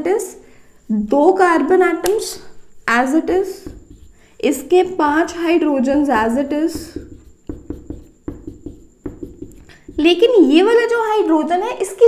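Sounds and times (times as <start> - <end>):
marker pen writing on whiteboard: 3.0 - 11.3.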